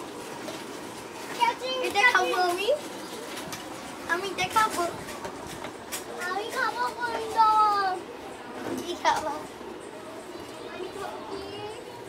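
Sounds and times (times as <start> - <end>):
child's high-pitched voice: 6.2 - 8.1, 10.6 - 12.0.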